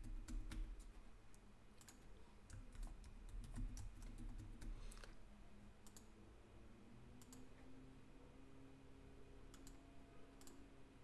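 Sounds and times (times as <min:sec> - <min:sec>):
computer mouse clicks: 0:00.0 - 0:05.2, 0:05.8 - 0:06.1, 0:07.2 - 0:07.6, 0:09.5 - 0:09.8, 0:10.4 - 0:10.6
faint steady hum: 0:00.0 - 0:11.0.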